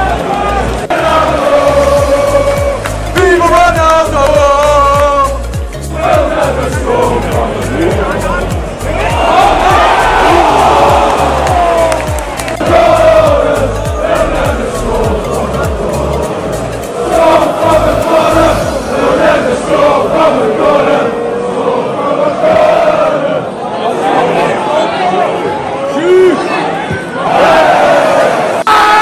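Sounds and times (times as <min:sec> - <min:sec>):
crowd singing a chant: 0:00.0 - 0:25.2, 0:26.9 - 0:29.0
low regular beat: 0:00.1 - 0:20.4.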